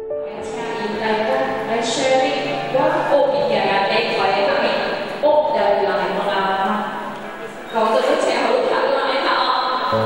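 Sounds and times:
soft music: 0.0 - 7.7
person talking through loudspeakers: 0.3 - 10.0.

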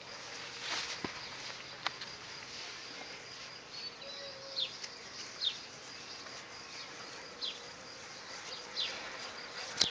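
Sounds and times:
high insect chirring: 0.0 - 9.9.

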